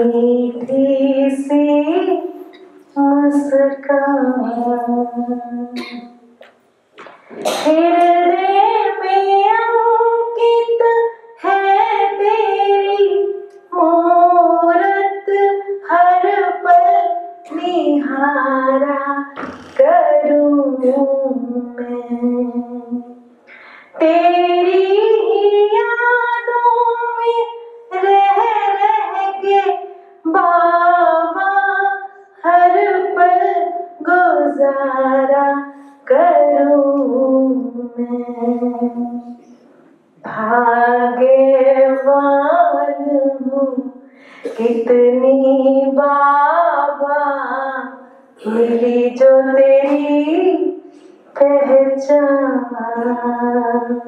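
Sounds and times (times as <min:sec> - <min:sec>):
woman singing into a microphone: 0:00.0 - 0:06.3, 0:07.3 - 0:39.4, 0:40.2 - 0:54.0
singer breathing: 0:23.5 - 0:24.0, 0:44.0 - 0:44.5.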